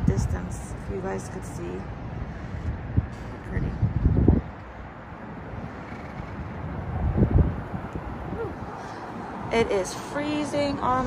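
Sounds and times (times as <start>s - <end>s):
distant highway traffic hum: 0.0s - 11.0s
wind buffeting microphone: 0.0s - 11.0s.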